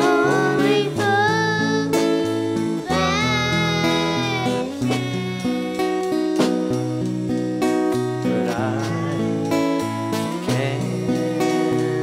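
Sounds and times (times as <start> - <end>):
acoustic guitar: 0.0 - 12.0
person singing long notes: 2.8 - 6.0, 8.2 - 9.6.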